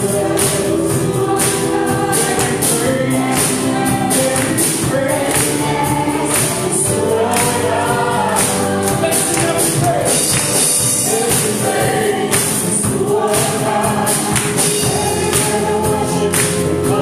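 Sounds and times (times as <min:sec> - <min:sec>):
steady regular beat: 0:00.0 - 0:17.0
women singing gospel: 0:00.0 - 0:17.0.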